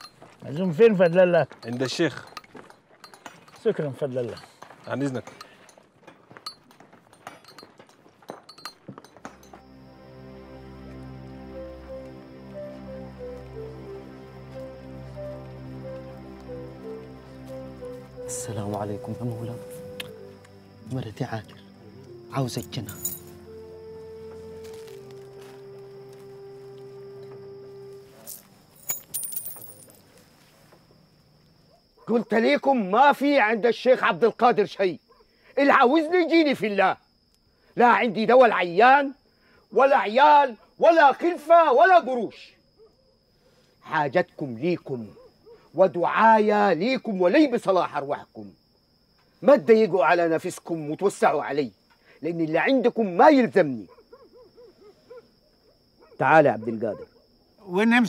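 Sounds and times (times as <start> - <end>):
bright metallic jingle: 6.5 - 9.6, 22.2 - 25.0, 28.0 - 30.0
held low musical note: 9.9 - 28.3
faint bird hooting: 53.9 - 56.2.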